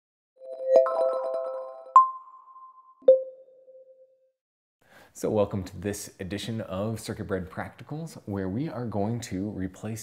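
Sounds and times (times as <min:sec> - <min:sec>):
synthesized intro jingle: 0:00.4 - 0:04.2.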